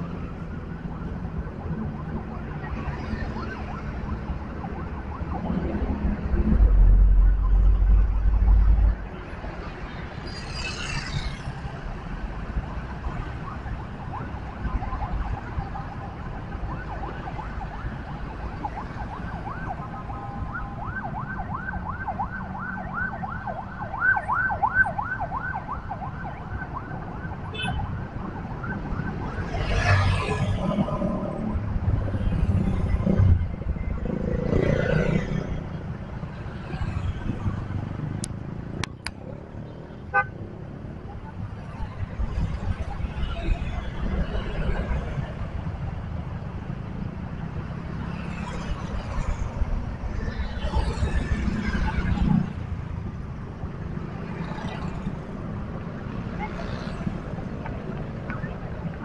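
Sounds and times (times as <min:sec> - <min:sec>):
road traffic rumble: 0:00.0 - 0:59.0
siren yelping: 0:13.0 - 0:31.4.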